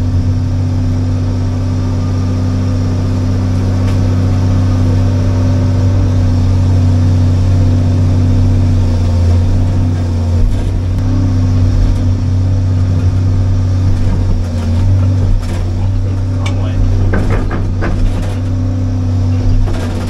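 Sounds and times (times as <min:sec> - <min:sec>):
excavator diesel engine running: 0:00.0 - 0:20.0.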